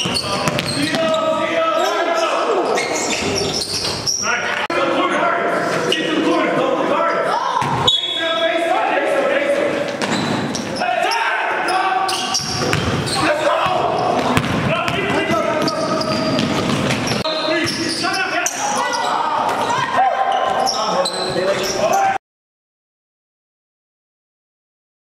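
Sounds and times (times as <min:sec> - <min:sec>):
basketball bouncing on hardwood: 0:00.4 - 0:01.0, 0:12.6 - 0:13.0, 0:14.2 - 0:17.2
voices shouting: 0:10.7 - 0:16.4, 0:17.2 - 0:22.2.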